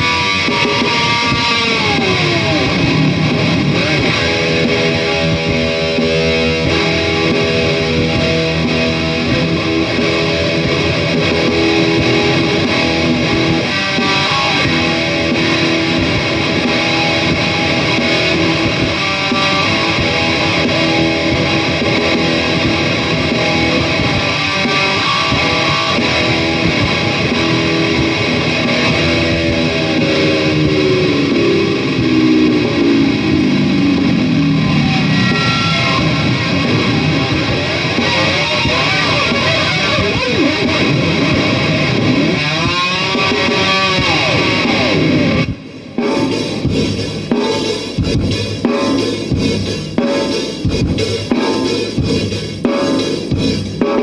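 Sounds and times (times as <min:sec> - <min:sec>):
distorted electric guitar: 0:00.0 - 0:54.0
rock drum loop: 0:00.0 - 0:54.0.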